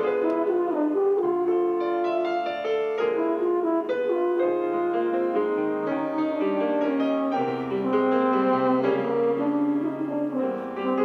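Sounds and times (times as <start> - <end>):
french horn: 0.0 - 11.0
piano: 0.0 - 11.0.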